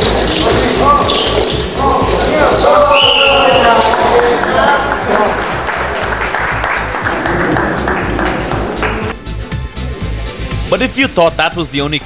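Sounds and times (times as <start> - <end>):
music with repeating bass line: 0.0 - 3.8, 4.5 - 11.9
audience applause: 2.9 - 9.2.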